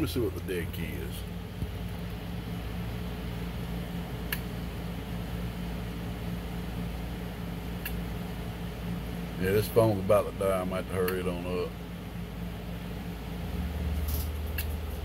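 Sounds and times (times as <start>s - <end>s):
electrical hum: 0.0s - 15.0s
fan whirring: 0.0s - 15.0s.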